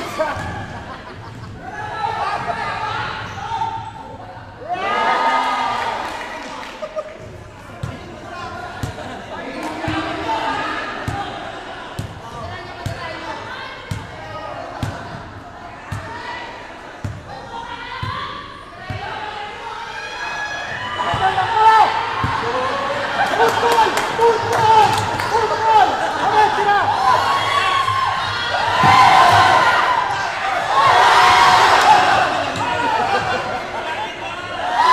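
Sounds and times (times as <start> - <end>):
spectators shouting and cheering: 0.0 - 15.0, 15.8 - 34.9
voices chattering: 6.4 - 34.9.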